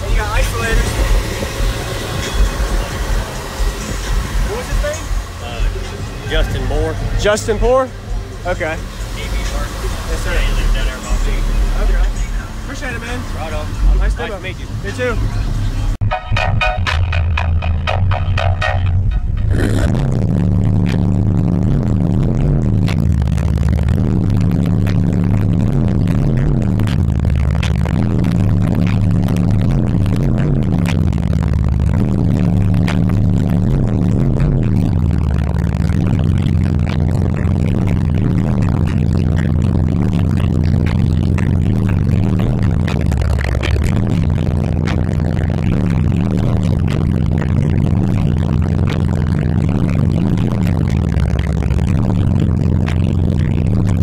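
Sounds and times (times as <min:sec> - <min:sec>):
bass-heavy music on car subwoofers: 0:00.0 - 0:54.0.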